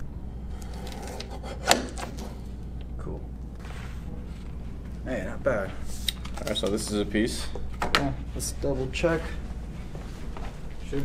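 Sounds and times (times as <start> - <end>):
paper cutter blade shearing paper: 0.5 - 2.4.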